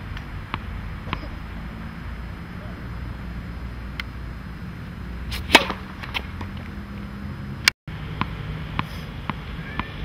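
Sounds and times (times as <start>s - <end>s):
tennis racket striking ball: 0.5s - 1.4s, 5.3s - 6.7s.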